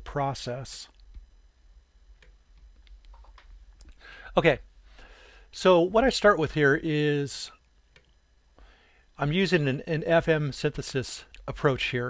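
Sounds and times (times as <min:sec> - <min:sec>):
low steady hum: 0:00.0 - 0:12.0
computer mouse clicks: 0:02.2 - 0:03.5.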